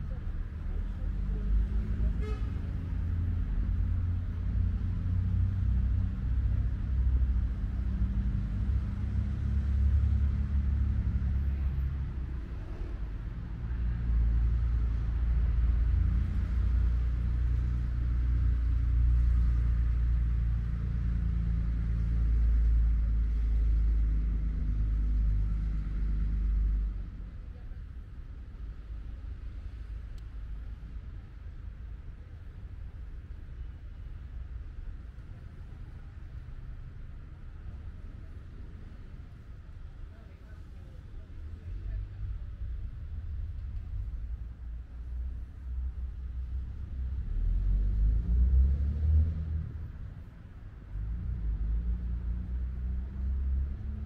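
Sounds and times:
low rumble: 0.0s - 54.0s.

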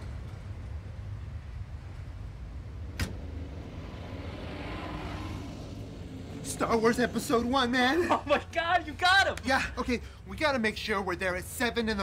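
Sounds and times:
traffic rumble: 0.0s - 12.0s
car passing: 1.4s - 10.3s.

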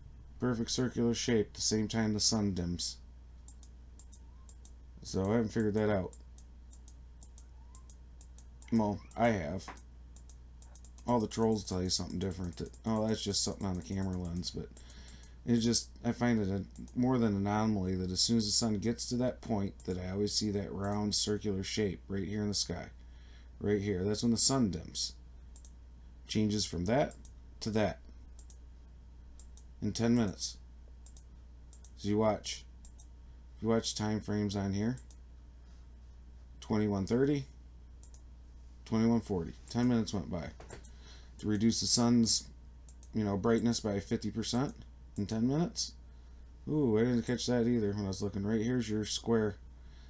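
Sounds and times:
low electrical hum: 0.0s - 50.0s
faint mouse clicks: 3.4s - 11.2s, 25.6s - 25.8s, 28.4s - 28.6s, 31.0s - 32.0s, 32.8s - 33.1s, 38.0s - 38.3s, 42.9s - 43.2s.

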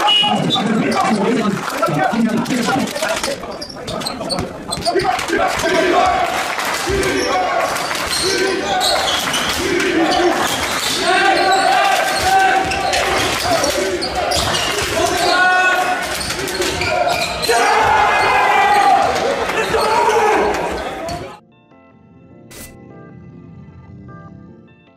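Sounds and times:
voices in a hall: 0.0s - 21.4s.

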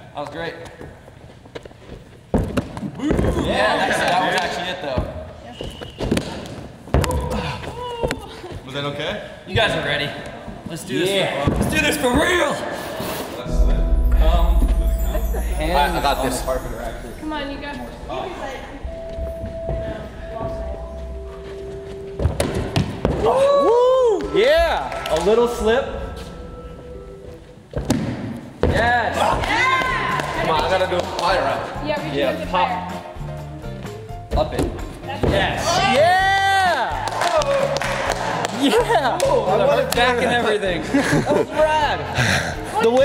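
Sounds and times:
lower tone: 13.5s - 24.2s, 25.7s - 27.7s
steady held tone: 13.5s - 27.8s.

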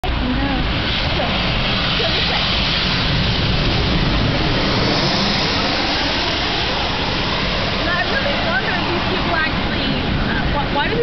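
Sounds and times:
jet airliner engines rushing: 0.0s - 11.0s.

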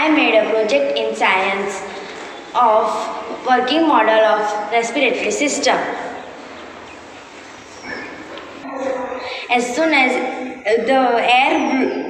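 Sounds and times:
steady background hiss: 0.0s - 11.5s.

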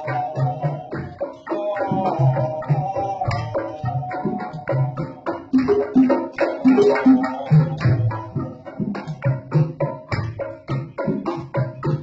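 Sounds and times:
bamboo zither ensemble music: 0.0s - 12.0s.

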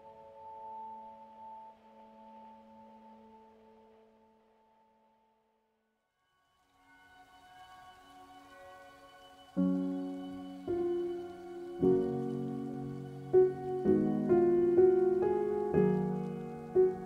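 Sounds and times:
soft slow instrumental music: 0.0s - 5.4s, 6.2s - 17.0s.

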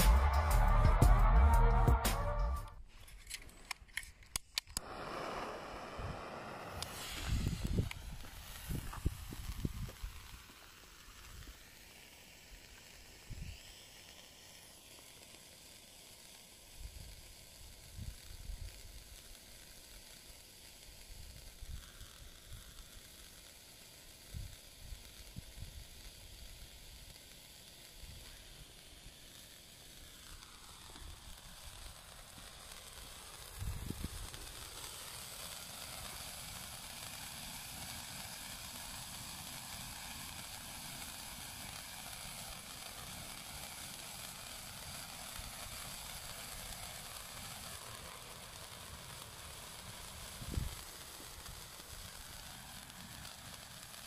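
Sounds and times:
flare sizzling hiss: 0.0s - 54.0s.

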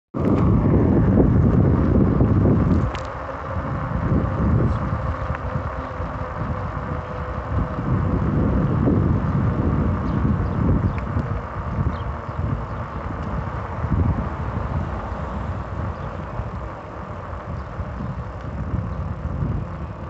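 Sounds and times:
road and rolling noise: 0.2s - 20.0s
wind rumble on microphone: 0.2s - 20.0s.

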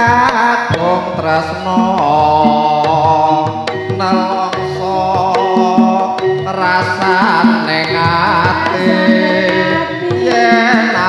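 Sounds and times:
hand drum strokes: 0.0s - 11.0s
wavering melody line: 0.8s - 11.0s.

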